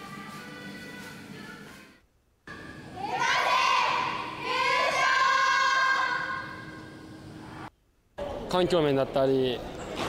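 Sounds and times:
women yelling through megaphones: 3.0 - 6.5.

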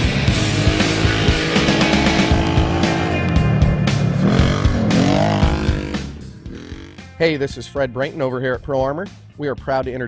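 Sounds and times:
engine revving: 0.0 - 7.2
rock music: 0.0 - 10.0.

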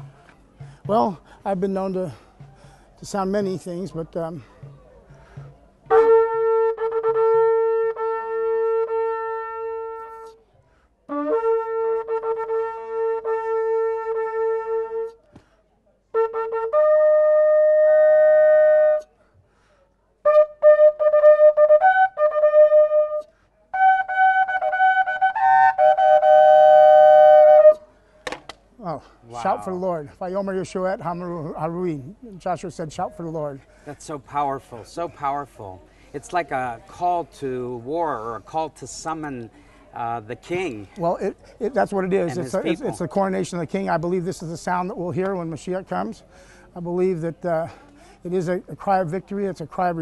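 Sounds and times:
shofar blasts: 5.8 - 10.4, 11.1 - 15.2, 20.3 - 27.8.

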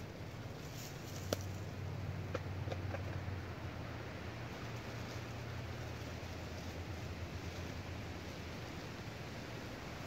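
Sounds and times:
steady hiss: 3.4 - 10.0.

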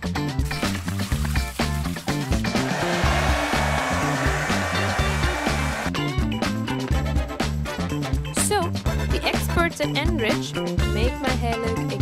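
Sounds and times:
background music: 0.0 - 12.0
hair dryer blowing with whine: 2.6 - 5.9.

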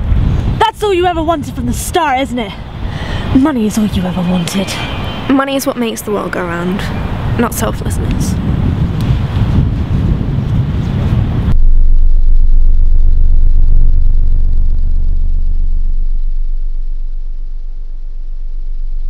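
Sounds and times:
wind buffeting microphone: 0.0 - 17.9
deep steady rumble: 0.0 - 19.0.

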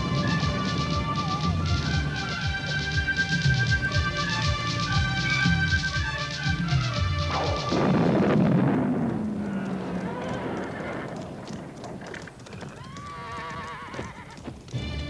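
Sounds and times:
rush of hooves: 0.0 - 15.0
horse whinny: 9.4 - 14.4.

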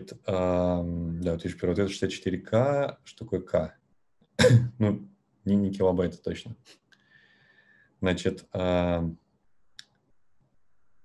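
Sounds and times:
man saying um: 0.0 - 3.5, 4.6 - 6.5, 8.0 - 9.1.

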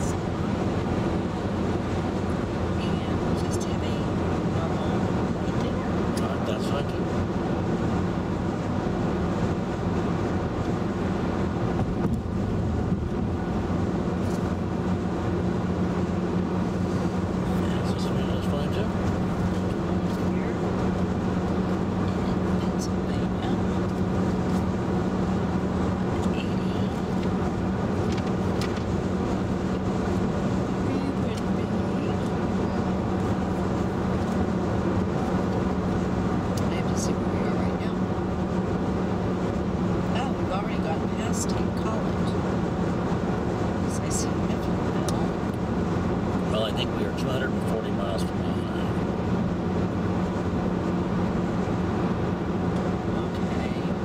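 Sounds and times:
car engine humming: 0.0 - 54.0.

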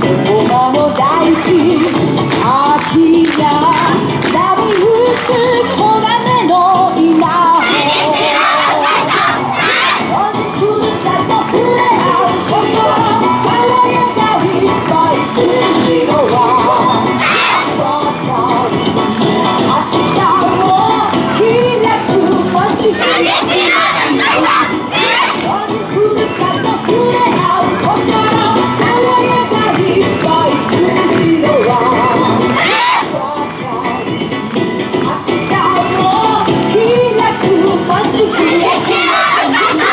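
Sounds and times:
dance music: 0.0 - 39.9
group shouting in unison: 7.6 - 10.0, 17.2 - 17.7, 23.0 - 25.4, 32.6 - 33.1, 38.4 - 39.9.

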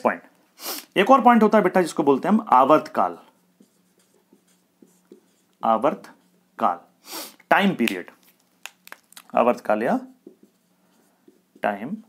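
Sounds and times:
marker pen on whiteboard: 0.9 - 12.0.

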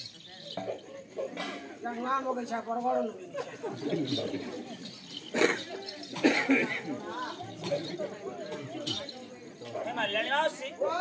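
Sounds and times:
person coughing: 6.2 - 6.8.

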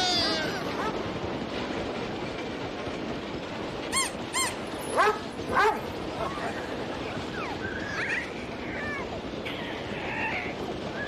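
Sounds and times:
baby whimpering and crying: 0.0 - 0.8.

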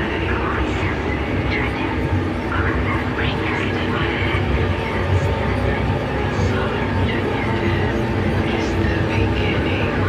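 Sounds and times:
eerie voice-like samples: 0.0 - 10.0.

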